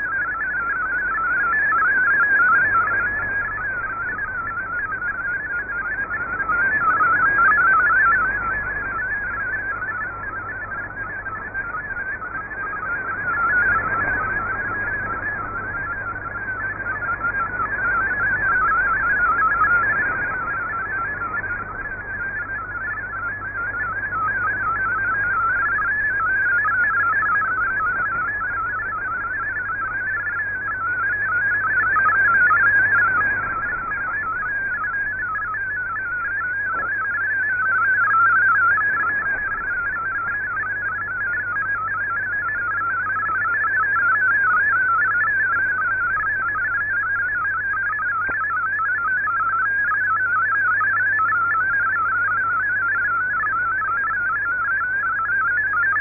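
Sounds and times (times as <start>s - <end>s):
warbling digital data tones: 0.0s - 56.0s.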